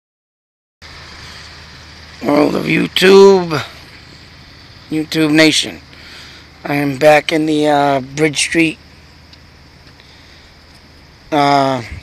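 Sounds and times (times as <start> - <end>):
low hum with hiss: 0.8 - 12.0.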